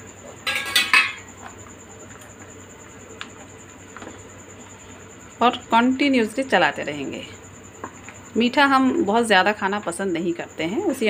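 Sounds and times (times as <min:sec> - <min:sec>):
metal cookware clattering: 0:00.4 - 0:01.3.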